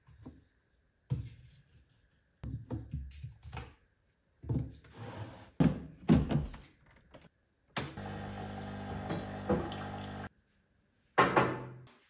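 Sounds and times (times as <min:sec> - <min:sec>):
espresso machine pump humming: 0:08.0 - 0:10.3.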